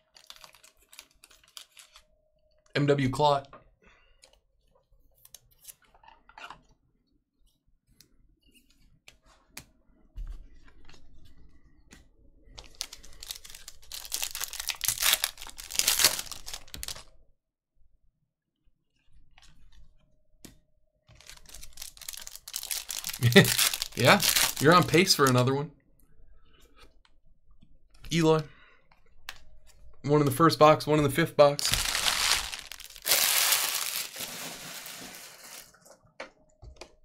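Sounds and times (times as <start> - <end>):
foil wrapper crinkling: 0.0 - 2.0, 12.6 - 17.0, 21.1 - 25.4, 31.6 - 35.8
foil wrapper tearing: 0.0 - 2.0, 12.7 - 17.0, 21.2 - 25.2, 31.6 - 35.7.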